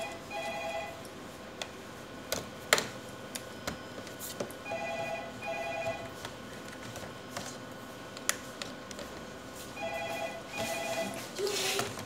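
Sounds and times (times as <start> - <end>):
electronic ringing tone: 0.0 - 1.0, 4.6 - 6.1, 9.8 - 11.3.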